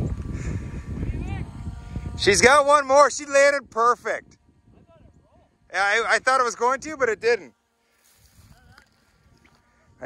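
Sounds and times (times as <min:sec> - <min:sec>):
faint wind noise on microphone: 0:00.0 - 0:10.0.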